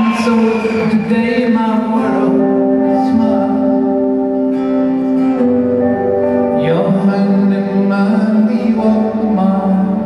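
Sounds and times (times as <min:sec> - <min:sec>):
guitar chords: 0:00.0 - 0:10.0
live band playing: 0:00.0 - 0:10.0.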